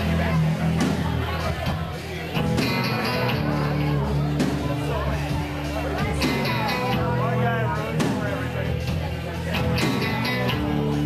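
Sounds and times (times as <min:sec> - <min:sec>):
drums: 0:00.0 - 0:11.0
electric guitar: 0:00.0 - 0:11.0.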